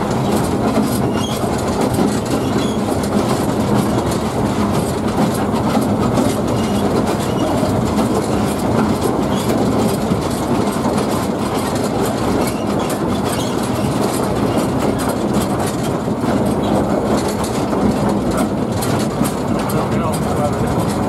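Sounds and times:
steam locomotive rumbling on track: 0.0s - 21.0s.

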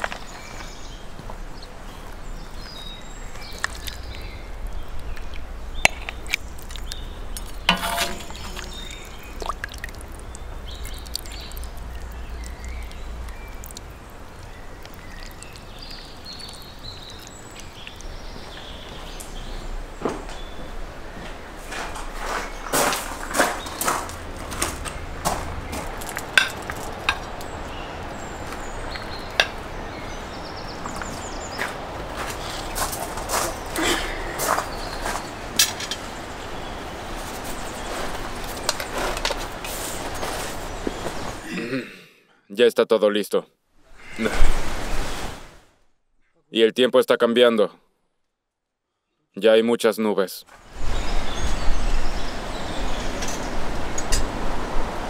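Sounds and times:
outdoor background noise: 0.0s - 55.0s
ladle scraping a cauldron: 7.4s - 9.6s.

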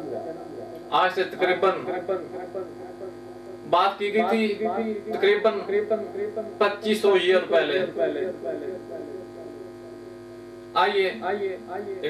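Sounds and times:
person speaking: 0.0s - 9.6s
electrical mains hum: 0.0s - 12.0s.

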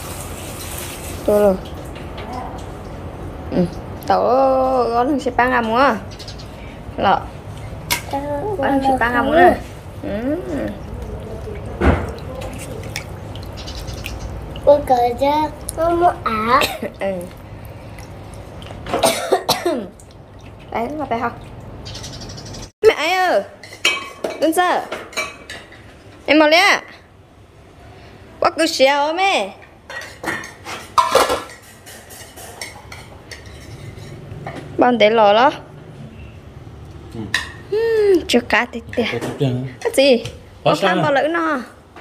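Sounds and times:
water sloshing and dripping: 0.0s - 4.2s, 7.4s - 22.7s
metal cooking pot clattering: 29.9s - 34.6s.

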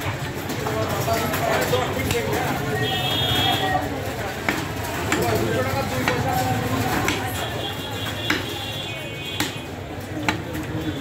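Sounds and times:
knife chopping meat on wood: 7.0s - 7.3s, 8.2s - 8.6s, 9.4s - 10.5s.

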